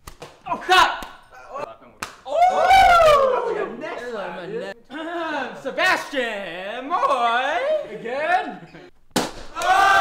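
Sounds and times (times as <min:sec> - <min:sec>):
group yelling: 0:02.3 - 0:03.8, 0:09.5 - 0:10.0.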